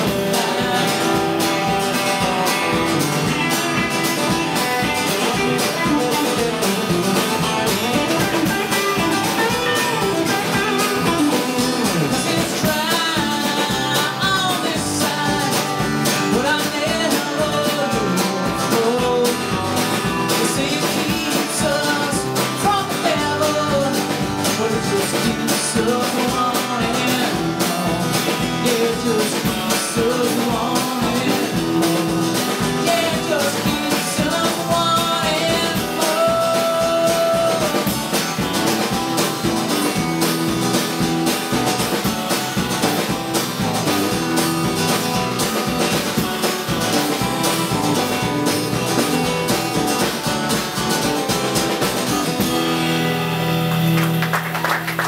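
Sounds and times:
acoustic guitar strumming: 0:00.0 - 0:55.0
bass guitar: 0:00.0 - 0:55.0
drums keeping a steady beat: 0:00.0 - 0:55.0
electric guitar: 0:00.0 - 0:55.0.

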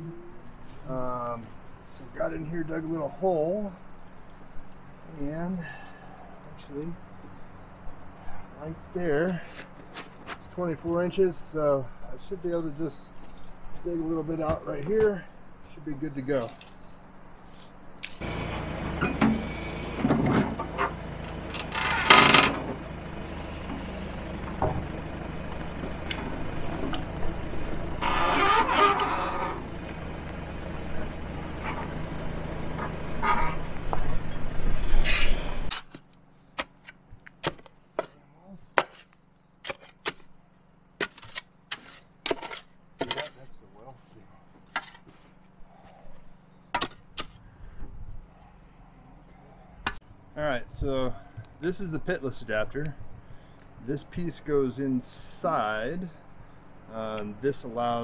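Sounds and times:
backhoe engine running: 0:03.8 - 0:37.5, 0:39.0 - 0:58.0
shovel chopping into dirt: 0:37.4 - 0:37.7, 0:38.8 - 0:40.3.

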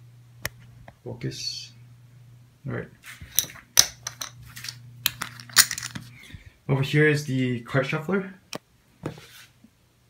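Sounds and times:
poker chips clicking: 0:03.4 - 0:06.0.

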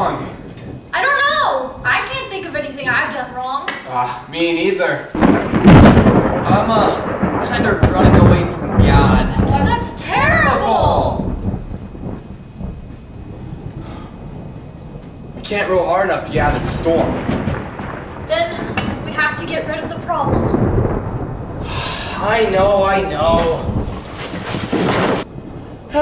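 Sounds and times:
low rumble of stage thunder: 0:00.0 - 0:03.6, 0:05.2 - 0:26.0.

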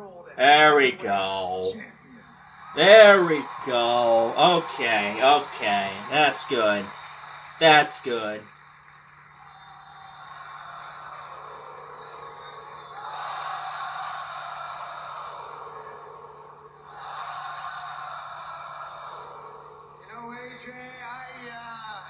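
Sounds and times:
arena crowd cheering: 0:00.4 - 0:22.0.

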